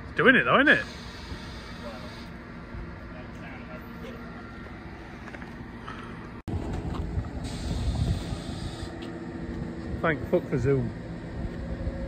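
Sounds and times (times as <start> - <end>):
heavy vehicle engine running: 0.0 - 12.0
hiss: 7.4 - 8.9.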